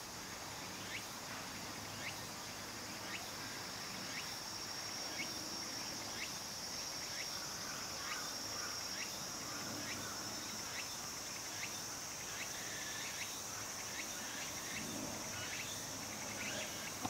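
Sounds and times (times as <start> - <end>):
crickets singing: 0.0 - 17.0.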